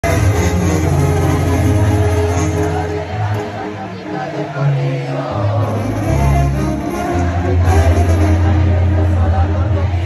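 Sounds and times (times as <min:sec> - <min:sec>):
loud music over sound system: 0:00.0 - 0:10.0.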